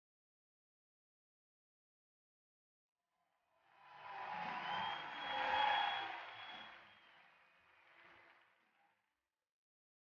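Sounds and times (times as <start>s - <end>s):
audience cheering and clapping: 4.0s - 8.4s.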